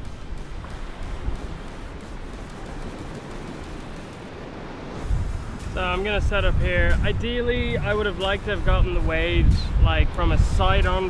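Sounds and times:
surf on beach: 0:00.0 - 0:11.0
wind buffeting microphone: 0:00.0 - 0:11.0.

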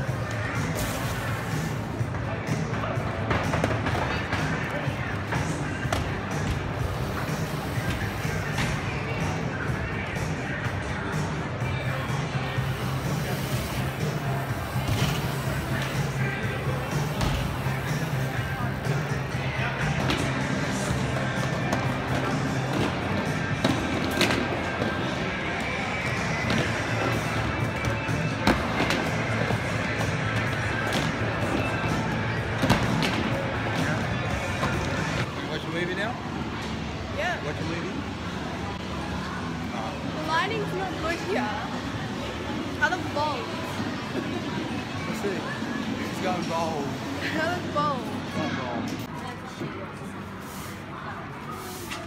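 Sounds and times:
background music: 0:00.0 - 0:46.2
crowd chatter: 0:00.0 - 0:52.0.

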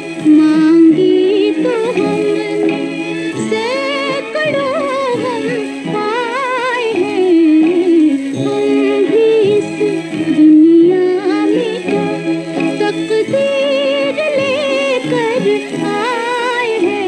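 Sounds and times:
orchestral accompaniment: 0:00.0 - 0:17.0
woman singing with vibrato: 0:00.0 - 0:17.0.

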